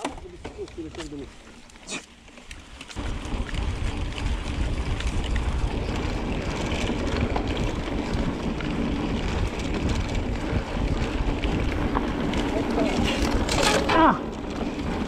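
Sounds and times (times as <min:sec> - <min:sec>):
bike clicks and rattles: 0:00.0 - 0:15.0
tyres rolling on dirt: 0:00.0 - 0:15.0
wind buffeting microphone: 0:03.0 - 0:15.0.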